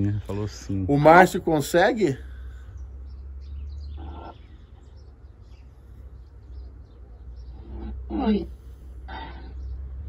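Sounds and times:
faint bird chirps: 0:00.1 - 0:10.0.

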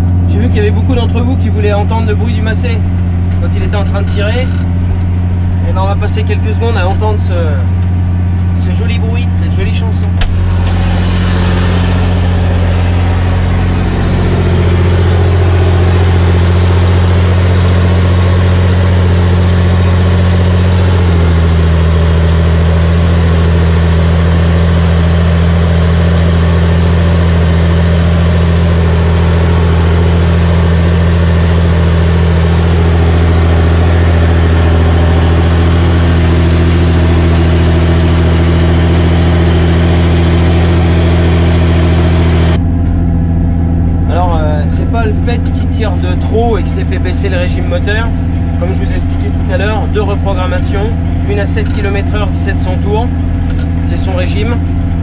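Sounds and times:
tractor diesel engine under load: 0:00.0 - 0:55.0.

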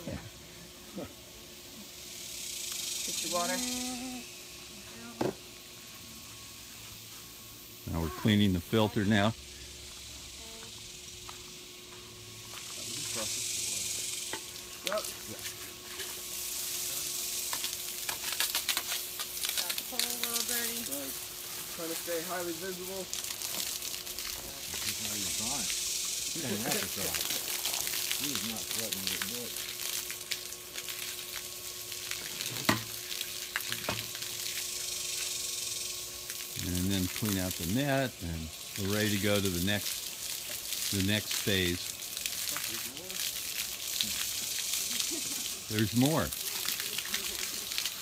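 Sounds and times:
garden hose spraying water: 0:00.0 - 0:48.0
water splashing: 0:38.5 - 0:48.0.

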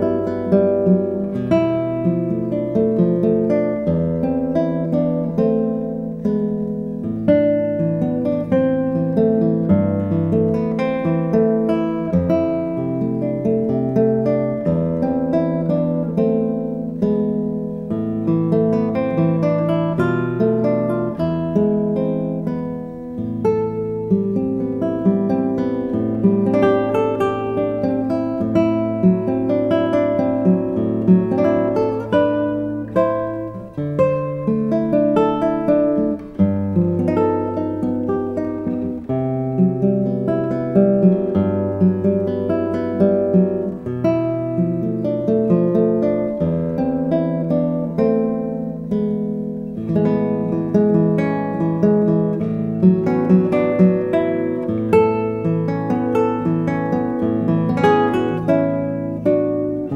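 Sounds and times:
fingerstyle classical guitar: 0:00.0 - 0:59.9.

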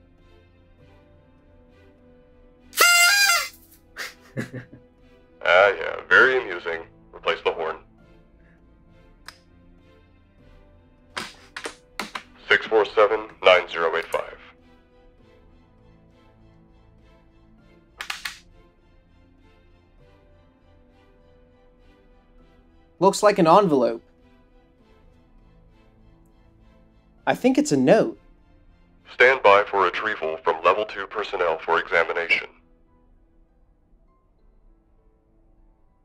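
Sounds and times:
soft background music: 0:00.0 - 0:02.8, 0:03.6 - 0:36.0
handheld horn honking: 0:02.8 - 0:03.6.

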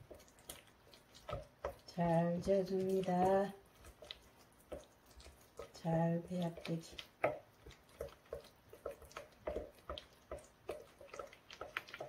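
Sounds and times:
spatula squelching sticky paste: 0:00.0 - 0:12.0.

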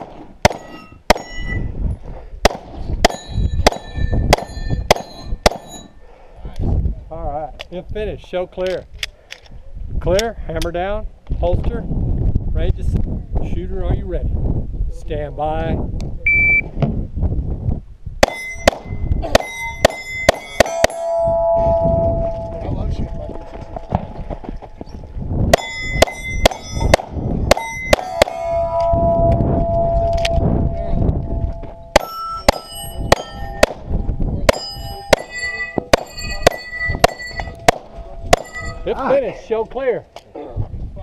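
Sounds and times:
pistol shots: 0:00.0 - 0:01.4, 0:31.9 - 0:33.9
steel plate targets ringing: 0:00.4 - 0:01.7, 0:03.0 - 0:06.0, 0:18.2 - 0:24.2, 0:25.5 - 0:38.9.

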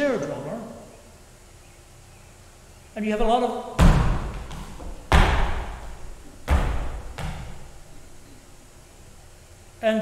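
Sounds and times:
heavy drum-like thumps: 0:03.8 - 0:07.7.

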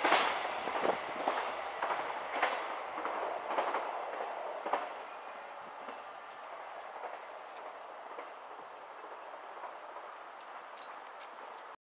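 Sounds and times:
train wheels clacking over rail joints: 0:00.0 - 0:05.2, 0:05.8 - 0:11.8
train running noise: 0:00.0 - 0:11.8.

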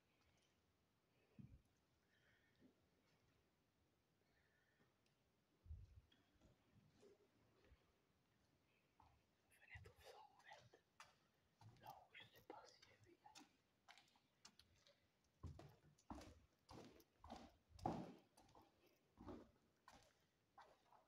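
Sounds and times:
footsteps on gritty floor: 0:15.4 - 0:20.8.

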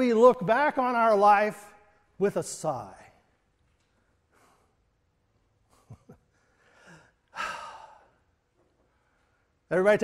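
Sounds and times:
man sighing: 0:06.6 - 0:08.2.

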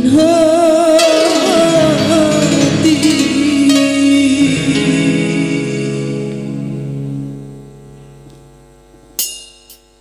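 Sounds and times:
keyboard drum pattern: 0:00.0 - 0:06.2
keyboard chord: 0:00.0 - 0:09.8
mains hum: 0:00.0 - 0:10.0.

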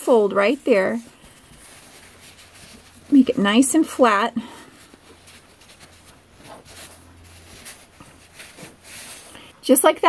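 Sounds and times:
low steady hum: 0:00.0 - 0:10.0
fabric rustling: 0:00.1 - 0:09.6.

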